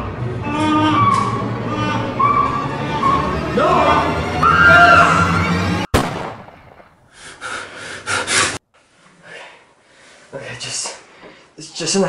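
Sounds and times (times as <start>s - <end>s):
background music: 0.0s - 5.9s
sudden sharp bang: 5.9s - 6.9s
heavy gasping breaths: 7.1s - 10.3s.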